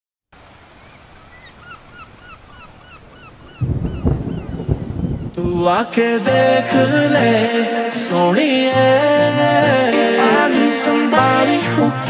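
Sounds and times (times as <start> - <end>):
bird calling: 0.7 - 5.4.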